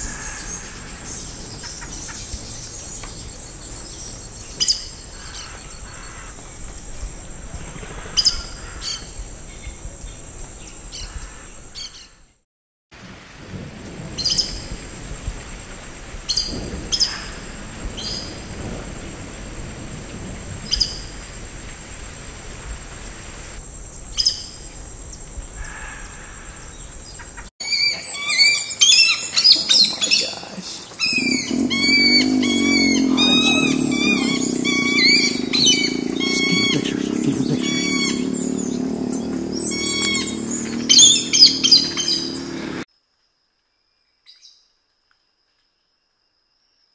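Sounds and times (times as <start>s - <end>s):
rain falling: 0.0s - 4.6s, 13.0s - 23.6s, 28.4s - 42.9s
overlapping high bird calls: 27.6s - 42.8s
loud wavering low hum: 31.0s - 42.8s.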